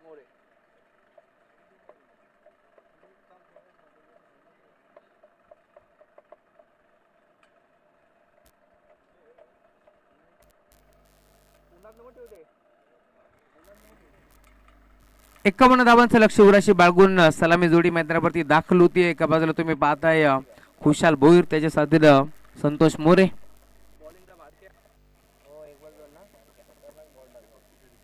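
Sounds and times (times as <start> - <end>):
low steady hum: 10.0 - 12.4, 13.4 - 28.0.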